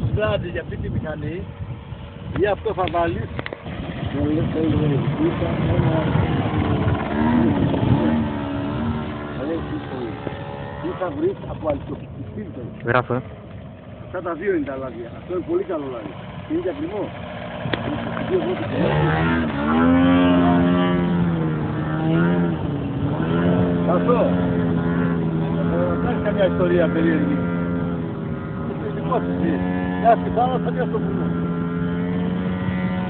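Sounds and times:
model plane engine drone: 0.0s - 33.0s.

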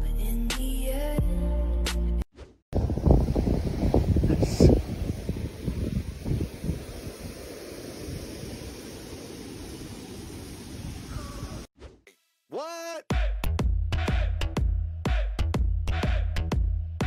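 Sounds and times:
wind buffeting microphone: 2.8s - 11.7s.

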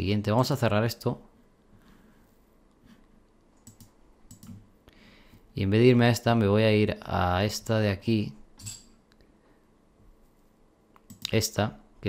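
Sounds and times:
computer mouse clicks: 3.6s - 4.6s, 11.0s - 11.4s.

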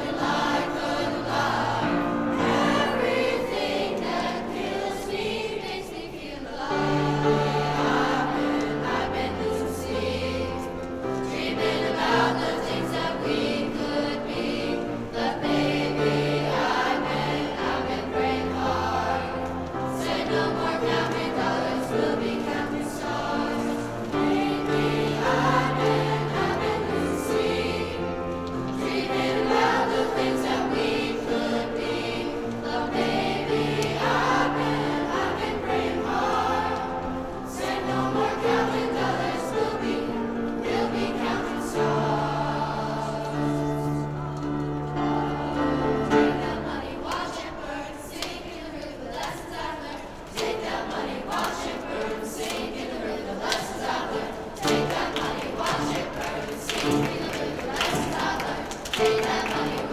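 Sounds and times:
choir singing: 0.0s - 59.9s
piano accompaniment: 0.0s - 59.9s.

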